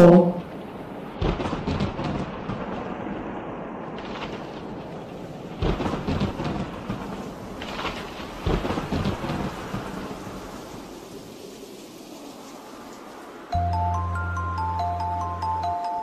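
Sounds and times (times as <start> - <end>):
thunderclaps rumbling: 0.0 - 13.6
steady rain: 0.0 - 16.0.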